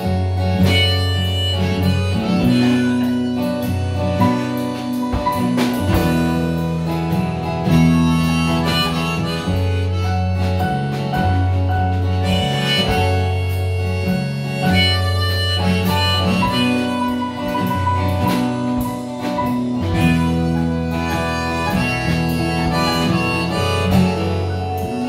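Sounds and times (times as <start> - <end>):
folk-pop band playing: 0.0 - 25.0.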